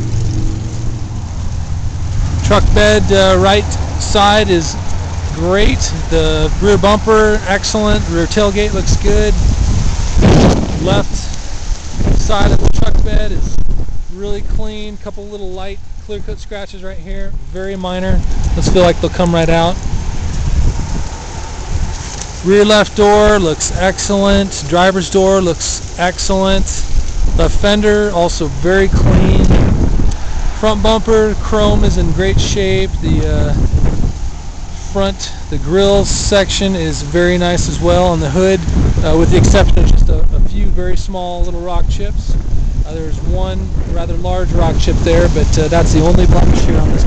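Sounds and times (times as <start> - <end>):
vehicle engine idling: 0.0 - 9.6
wind buffeting microphone: 0.0 - 47.0.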